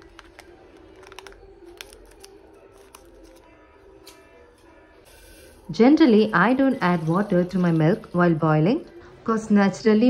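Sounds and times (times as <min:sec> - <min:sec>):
scissors snipping plastic: 0:00.0 - 0:04.2
faint background music: 0:00.0 - 0:10.0.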